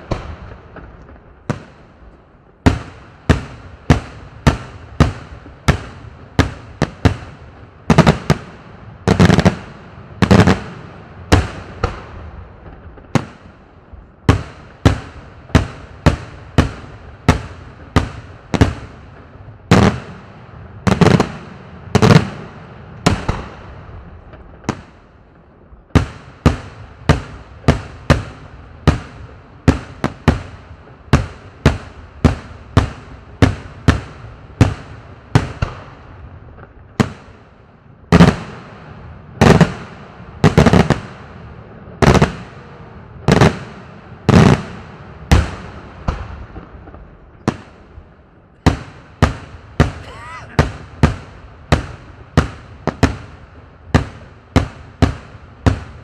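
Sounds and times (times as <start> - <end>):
fireworks bangs: 0.0 - 37.5, 38.1 - 56.0.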